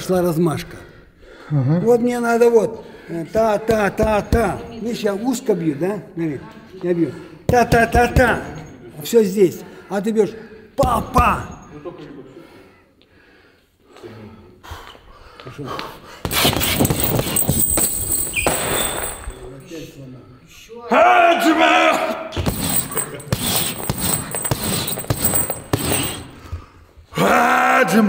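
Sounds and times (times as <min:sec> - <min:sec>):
punching bag being punched: 0:16.3 - 0:18.9, 0:22.4 - 0:26.3
punching bag falling on floor: 0:16.3 - 0:19.0
chain clattering and ringing: 0:16.3 - 0:20.0, 0:22.5 - 0:26.4
loud shouting: 0:20.9 - 0:22.3, 0:27.2 - 0:28.0.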